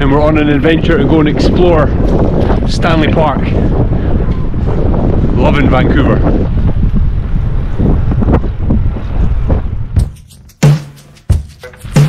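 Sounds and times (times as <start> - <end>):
wind buffeting microphone: 0.0 - 10.5.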